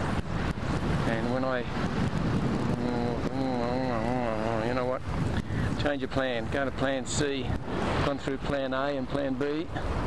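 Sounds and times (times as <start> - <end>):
wind buffeting microphone: 0.0 - 10.0
man humming: 2.5 - 5.0.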